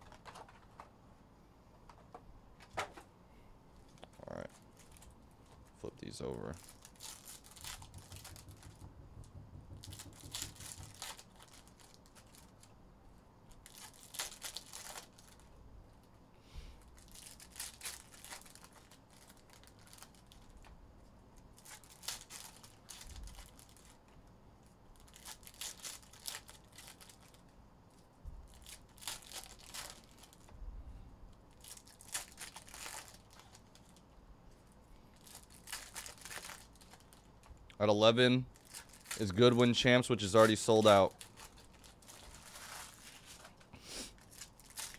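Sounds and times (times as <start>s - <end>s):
foil wrappers ripping: 6.1s - 8.7s, 9.8s - 12.7s, 13.5s - 15.5s, 16.8s - 20.7s, 21.4s - 24.0s, 24.9s - 27.5s, 28.5s - 30.5s, 31.5s - 34.0s, 35.2s - 37.5s, 38.5s - 44.9s.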